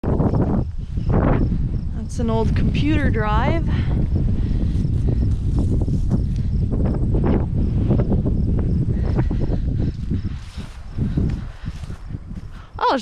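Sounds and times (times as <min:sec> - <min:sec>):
wind buffeting microphone: 0:00.0 - 0:13.0
footsteps through dry grass: 0:04.1 - 0:12.6.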